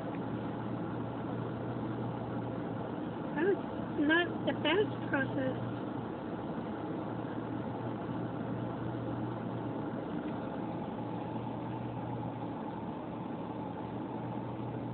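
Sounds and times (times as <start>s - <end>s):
car idling from inside cabin: 0.0s - 14.9s.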